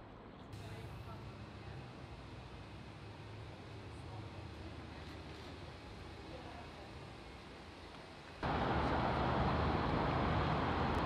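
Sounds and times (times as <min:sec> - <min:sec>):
road traffic noise: 0:00.5 - 0:11.0.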